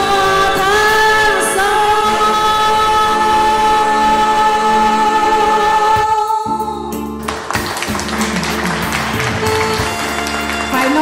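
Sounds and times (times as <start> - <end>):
person singing: 0.0 - 7.3
live band music: 0.0 - 11.0
audience applause: 7.3 - 11.0.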